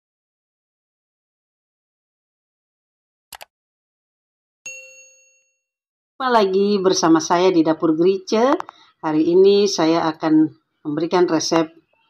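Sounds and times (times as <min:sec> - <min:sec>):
bright notification bell ding: 0:04.7 - 0:05.6.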